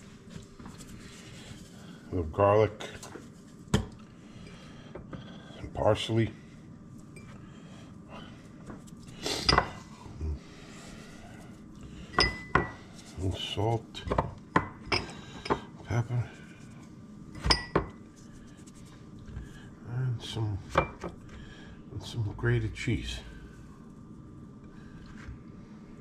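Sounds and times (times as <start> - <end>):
glass dish tapping with ring: 12.2 - 12.7.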